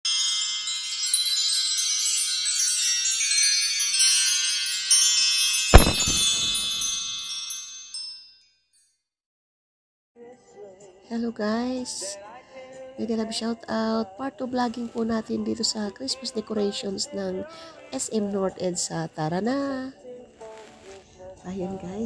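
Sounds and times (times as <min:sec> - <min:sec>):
tinkling chimes: 0:00.0 - 0:09.0
sharp low hit: 0:05.7 - 0:07.1.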